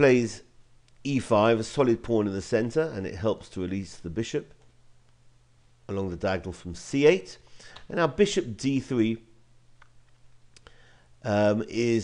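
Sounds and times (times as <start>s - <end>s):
man speaking: 0.0s - 4.6s, 5.9s - 9.4s, 11.2s - 12.0s
faint low hum: 0.0s - 12.0s.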